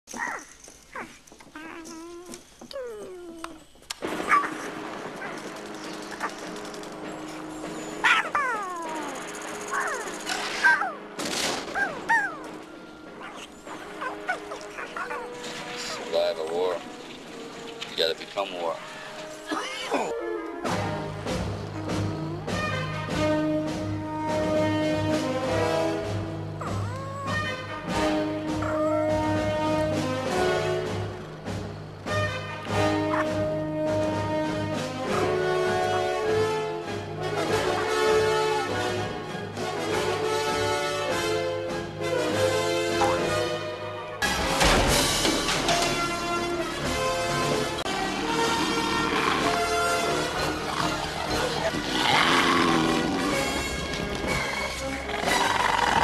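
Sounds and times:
television film soundtrack: 2.6 - 56.0
high cooing creature voice: 21.7 - 22.6, 26.6 - 27.6.

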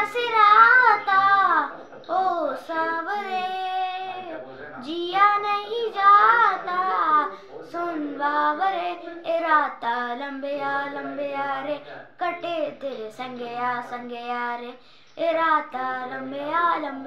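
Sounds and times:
boy singing unaccompanied: 0.0 - 17.0.

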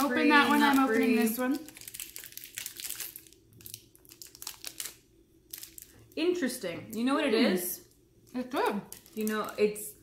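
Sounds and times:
plastic wrappers crinkling: 0.0 - 6.2, 8.3 - 10.0.

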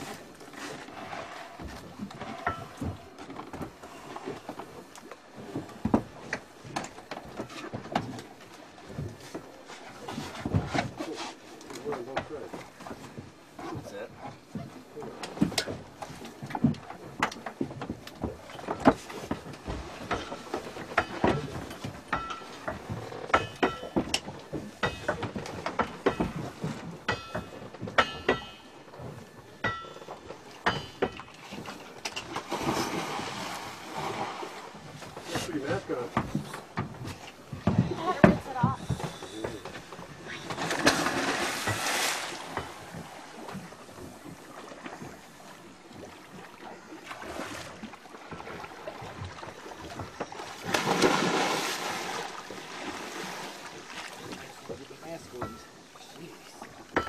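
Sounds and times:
scuba gear knocking and clattering: 1.5 - 8.3, 11.6 - 32.5, 35.1 - 44.4, 54.2 - 55.9.

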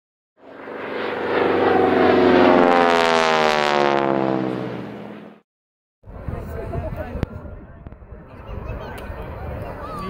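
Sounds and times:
airplane flying past: 0.4 - 5.4.

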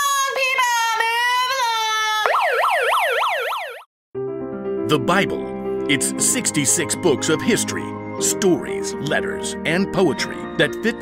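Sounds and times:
megaphone siren yelp: 2.1 - 3.9.

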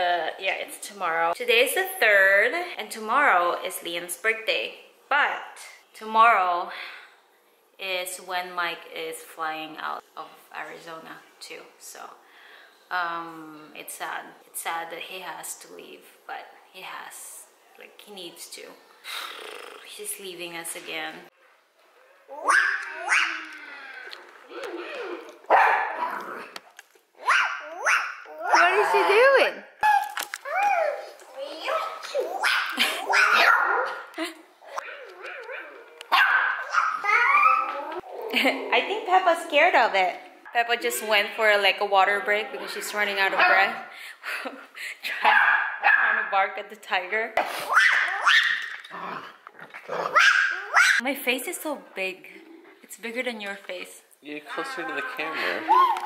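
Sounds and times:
dog barking: 22.4 - 23.4, 25.5 - 26.2, 27.2 - 28.7, 32.4 - 34.0, 34.9 - 37.5, 45.2 - 46.3, 47.7 - 48.7, 50.1 - 51.0.

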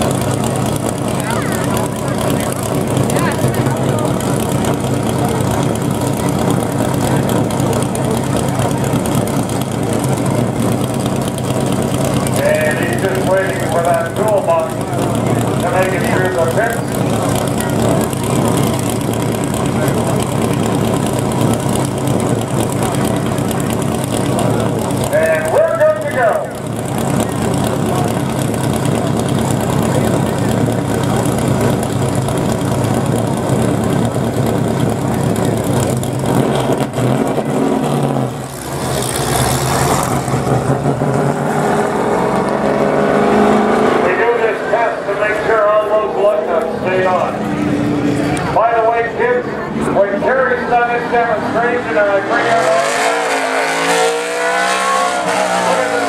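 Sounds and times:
car engine idling and revving: 0.0 - 56.0.

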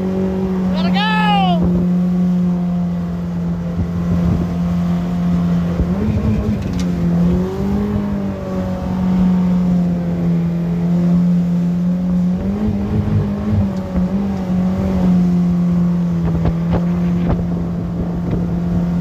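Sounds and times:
outboard motor running: 0.0 - 19.0.

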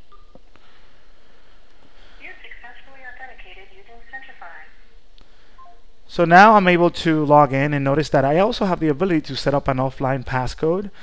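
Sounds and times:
recorded voice over phone: 2.2 - 4.8.

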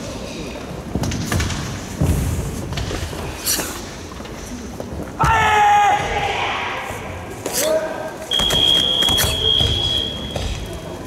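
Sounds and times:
high-pitched beep: 8.3 - 10.4.

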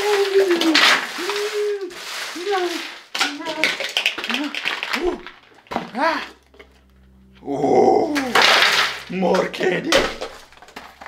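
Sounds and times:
candy wrappers rustling on table: 0.0 - 6.7, 8.2 - 11.0.

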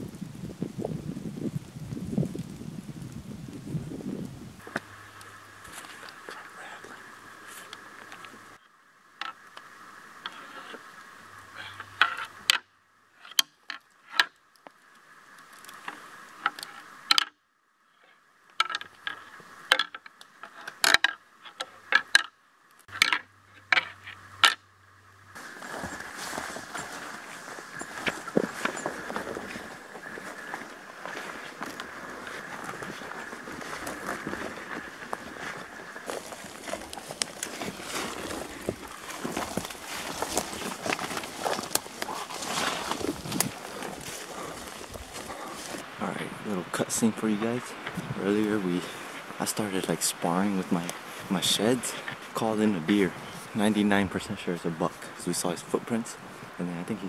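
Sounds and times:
rustling in brush: 25.3 - 46.0
footsteps through leaf litter: 25.4 - 45.9.

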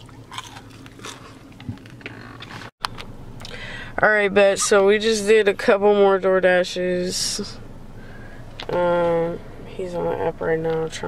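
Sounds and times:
crunching bites and chewing: 0.0 - 3.6
low steady hum: 0.0 - 11.0.

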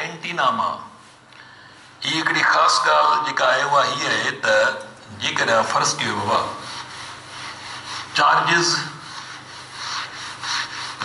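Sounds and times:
eraser scrubbing whiteboard: 5.8 - 11.0.

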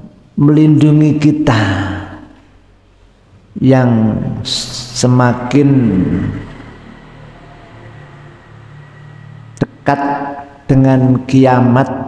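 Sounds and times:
man's voice: 0.0 - 2.3, 3.6 - 6.5
steady low hum: 0.0 - 12.0.

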